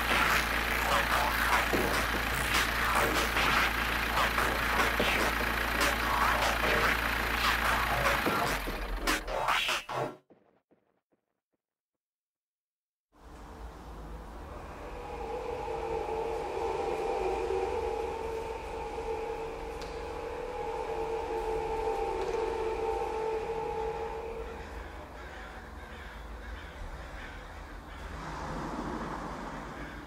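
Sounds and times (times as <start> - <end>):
steady low rumble: 0.0 - 9.6, 13.2 - 30.0
sustained droning tones: 0.0 - 9.6, 13.2 - 30.0.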